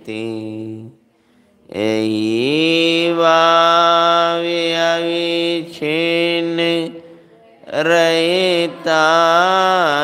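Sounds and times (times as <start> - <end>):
man chanting: 0.0 - 1.0, 1.6 - 10.0.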